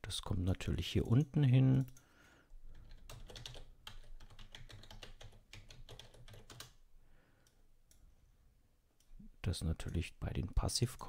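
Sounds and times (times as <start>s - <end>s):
computer keyboard typing: 2.7s - 6.8s.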